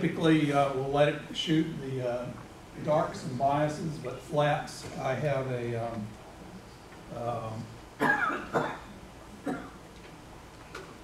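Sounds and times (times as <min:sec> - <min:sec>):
person coughing: 0:08.0 - 0:09.8.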